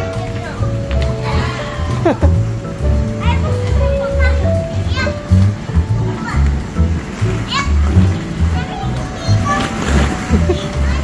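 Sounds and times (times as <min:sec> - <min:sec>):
background music with bass line: 0:00.0 - 0:11.0.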